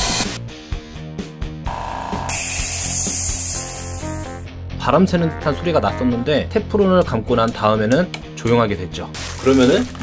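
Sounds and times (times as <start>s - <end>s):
music clip: 0.2s - 7.3s.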